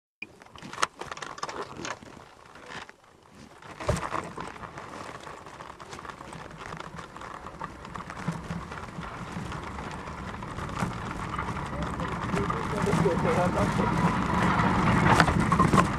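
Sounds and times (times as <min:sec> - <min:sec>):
sled scraping rush on ice: 0:00.6 - 0:15.9
sled thump: 0:02.7 - 0:15.9
sled knocks: 0:03.5 - 0:15.9.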